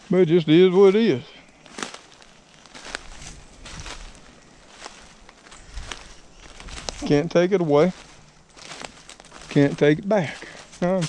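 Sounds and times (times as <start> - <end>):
footsteps through dry leaves: 0.0 - 11.0.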